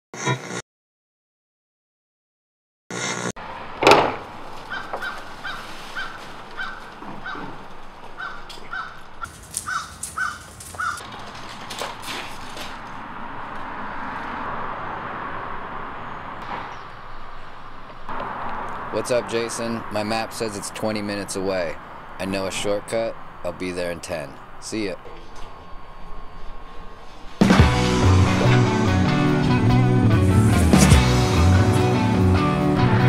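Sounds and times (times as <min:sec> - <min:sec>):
outdoor ambience: 0:02.9 - 0:31.5.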